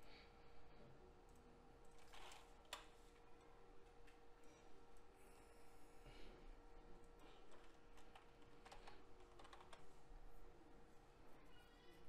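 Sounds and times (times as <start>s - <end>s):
faint computer keyboard clicks: 7.0s - 9.8s.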